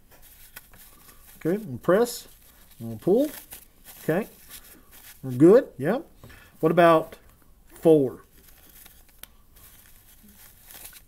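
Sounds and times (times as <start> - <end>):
paper mask rustling: 0.0 - 5.7, 6.8 - 11.0.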